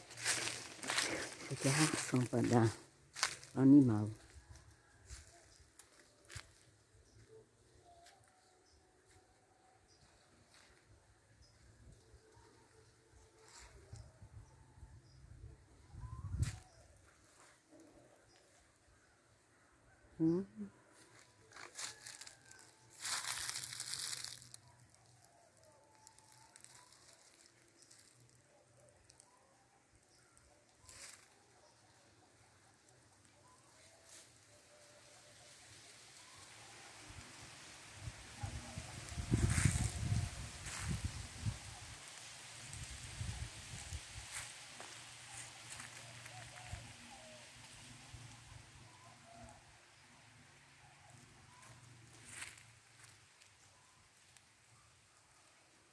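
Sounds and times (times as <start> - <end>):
dry leaves and twigs crunching: 0.0 - 9.2, 21.0 - 29.3, 30.1 - 31.9, 32.7 - 48.3, 51.1 - 54.5.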